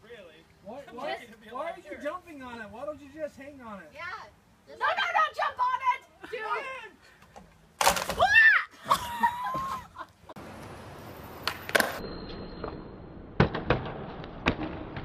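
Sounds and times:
wooden beam crash: 7.8 - 8.3.

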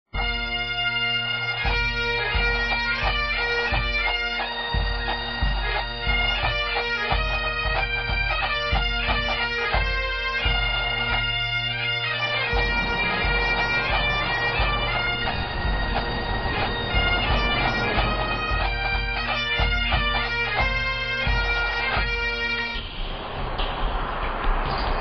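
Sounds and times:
bagpipe melody over drones: 0.2 - 22.9
pulsing low accompaniment: 1.6 - 25.0.

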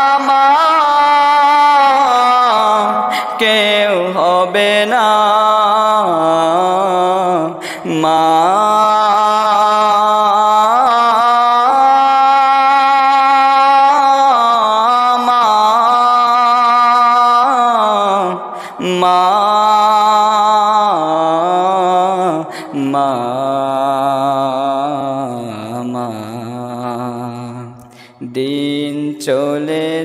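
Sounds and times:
person singing devotional song: 0.0 - 30.0
short breath: 3.0 - 3.4, 7.6 - 7.9, 18.4 - 18.8, 22.4 - 22.8, 27.8 - 28.2.

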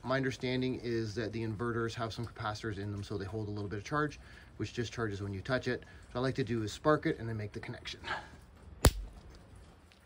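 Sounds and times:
electric spark snap: 8.8 - 9.2.

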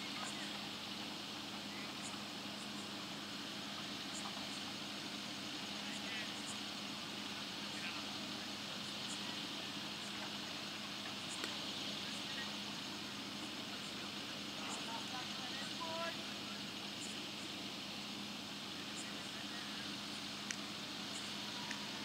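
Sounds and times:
constant low hum: 0.0 - 22.0
distant voices calling out: 0.0 - 22.0.

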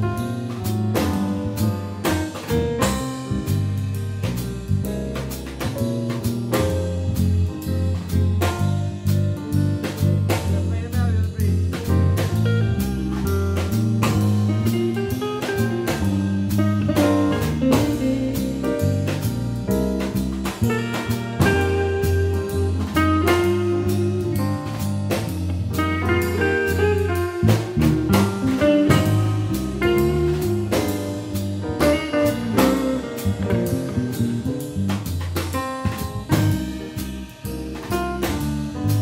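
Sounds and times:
drum and cymbal strokes: 0.0 - 39.0
electric bass notes: 0.0 - 39.0
grand piano: 0.0 - 39.0
electric guitar: 12.4 - 35.0.

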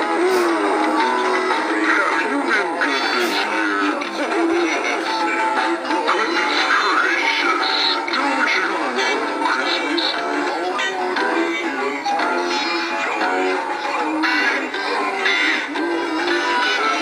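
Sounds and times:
toy music through small speakers: 0.0 - 17.0.

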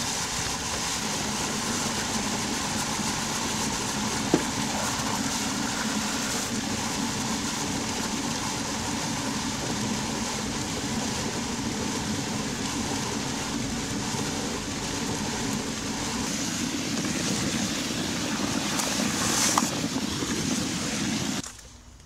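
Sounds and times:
cement mixer churning: 0.0 - 21.4.

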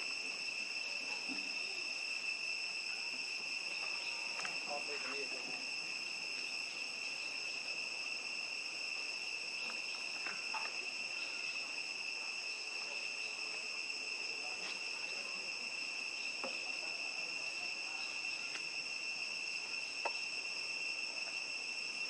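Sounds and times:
insects droning: 0.0 - 22.0.

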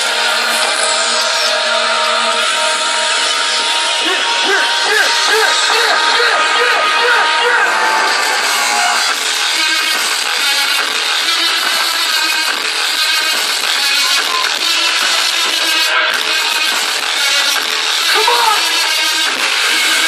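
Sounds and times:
loud electronic dance music: 0.0 - 20.0.

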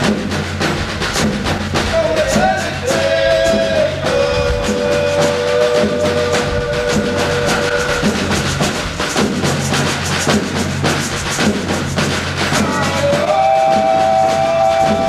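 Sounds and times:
bass drums beating: 0.0 - 15.0.

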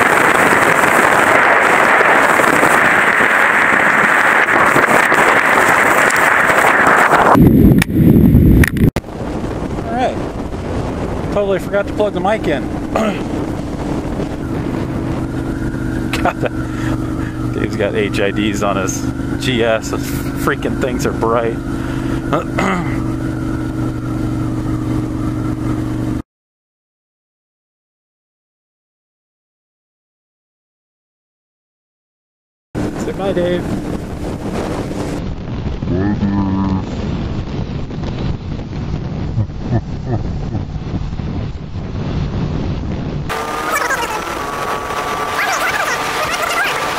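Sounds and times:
motorcycle engine running: 0.0 - 26.2, 32.8 - 46.9
road rumble: 0.0 - 26.2, 32.8 - 46.9
wind noise on microphone: 0.0 - 26.2, 32.8 - 46.9
rising pitched tone: 10.6 - 26.2, 39.3 - 40.8, 43.3 - 46.9.

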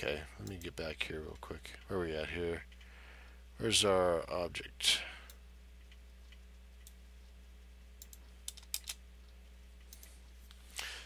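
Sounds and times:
low steady hum: 0.0 - 11.0
keyboard and mouse clicks: 8.0 - 9.0.

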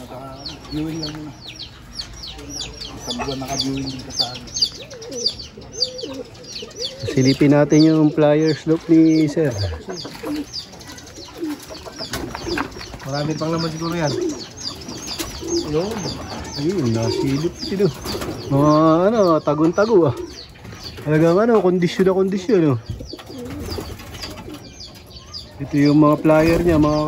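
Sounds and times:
pigeons cooing: 0.0 - 27.0.

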